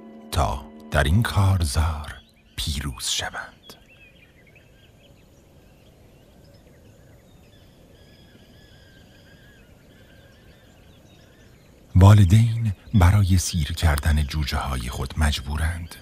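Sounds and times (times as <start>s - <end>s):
faint high bird calls: 0.0s - 16.0s
low open country background noise: 0.0s - 16.0s.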